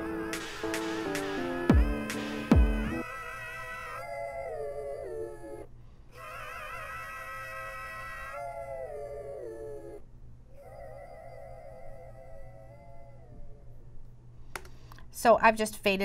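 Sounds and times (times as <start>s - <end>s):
person singing with vibrato: 0.0s - 3.4s.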